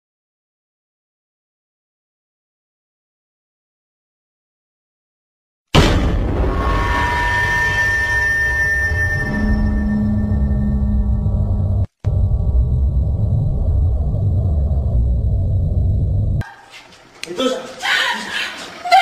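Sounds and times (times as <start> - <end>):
deep rumbling drone: 6.0 - 16.4
steady hum: 9.9 - 16.4.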